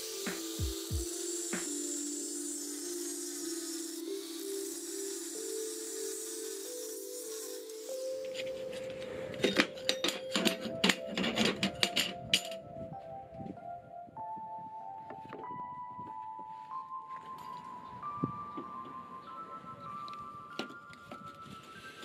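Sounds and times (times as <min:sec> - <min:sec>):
angle grinder cutting steel: 0:00.0 - 0:08.9
background music: 0:00.0 - 0:22.0
steel strips clinking: 0:07.5 - 0:12.6.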